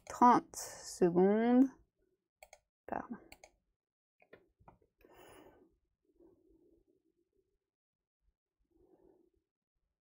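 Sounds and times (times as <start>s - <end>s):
soft breath: 5.0s - 7.1s, 8.7s - 9.4s.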